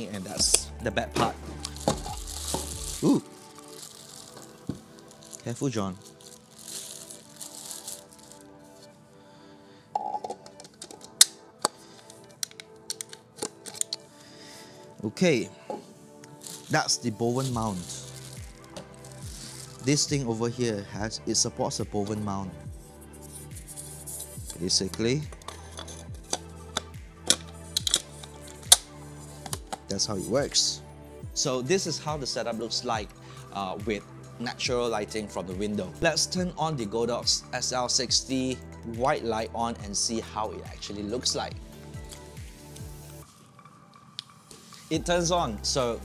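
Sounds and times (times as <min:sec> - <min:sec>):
background music: 0:00.0 - 0:46.0
plastic packaging rustling: 0:01.6 - 0:08.9, 0:12.0 - 0:14.0, 0:16.3 - 0:19.9.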